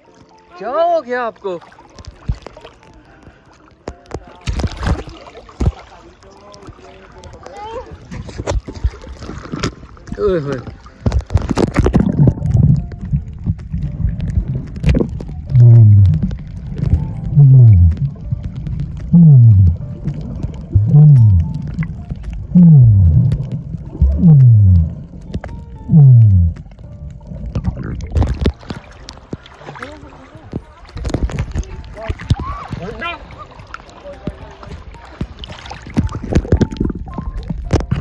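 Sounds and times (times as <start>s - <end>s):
muffled snorkel breathing: 2.9s - 3.8s
low moaning tone: 12.1s - 28.2s.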